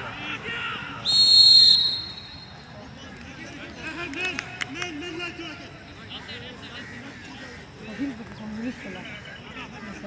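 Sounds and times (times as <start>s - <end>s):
referee's whistle blast: 1.0s - 2.6s.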